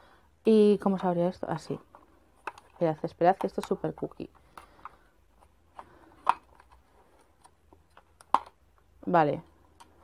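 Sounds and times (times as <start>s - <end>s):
plastic makeup kit handling: 0.9s - 8.9s.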